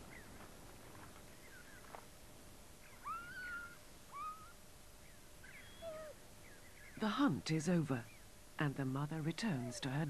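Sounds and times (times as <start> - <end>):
wild dog whining calls: 2.9 - 4.6, 5.4 - 6.3.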